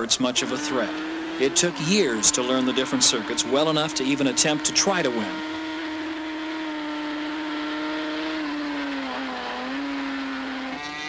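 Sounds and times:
racing motorcycle engine at high revs: 0:00.0 - 0:11.0.

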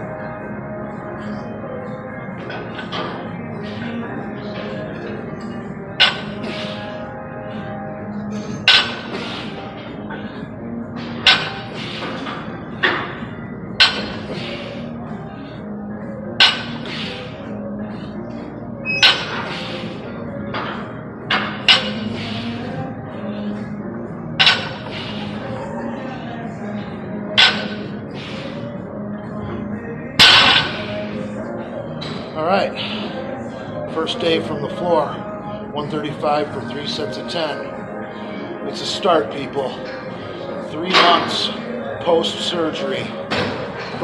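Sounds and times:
background music: 0:00.0 - 0:44.0.

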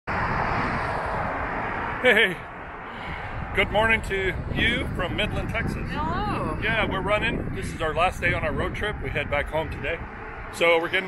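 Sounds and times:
steady rushing noise: 0:00.1 - 0:11.0.

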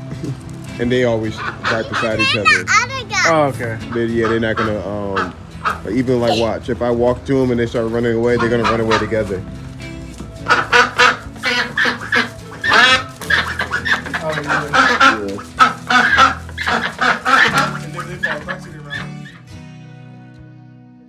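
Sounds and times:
soft background music: 0:00.0 - 0:21.0
ducks quacking loudly: 0:00.9 - 0:07.0, 0:07.8 - 0:09.6, 0:10.3 - 0:19.5.

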